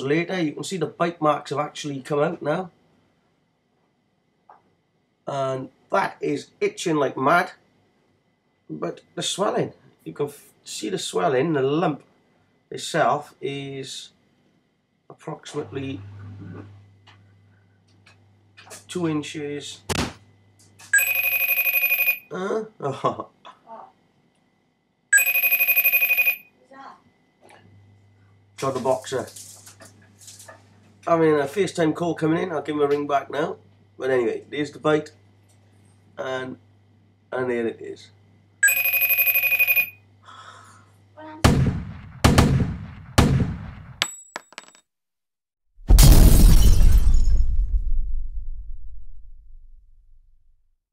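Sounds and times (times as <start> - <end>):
call ringtone: 21.0 - 22.3, 25.2 - 26.5, 38.6 - 40.0
heavy booming hits: 41.4 - 43.8, 45.8 - 48.8.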